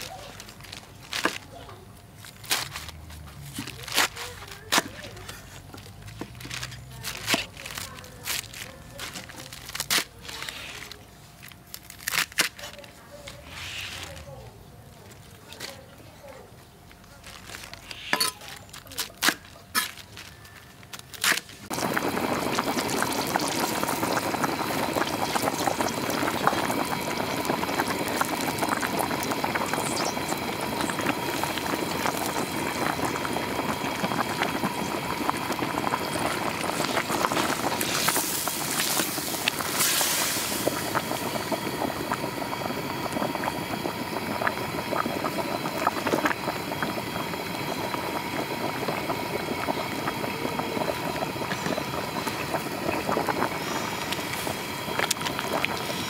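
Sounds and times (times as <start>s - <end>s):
soup boiling with bursting bubbles: 2.0s - 12.6s, 17.6s - 56.0s.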